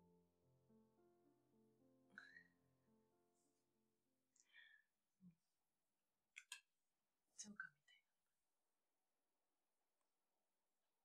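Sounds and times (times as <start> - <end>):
woman whispering: 7.4 - 8.1.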